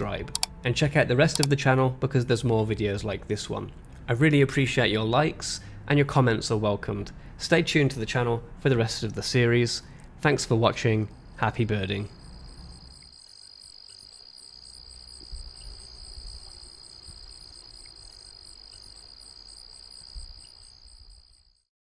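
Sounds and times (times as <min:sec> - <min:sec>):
insects trilling: 0:11.2 - 0:21.7.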